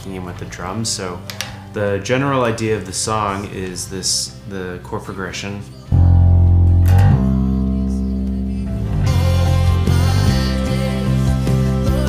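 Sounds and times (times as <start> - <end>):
electric bass guitar long notes: 5.9 - 12.0.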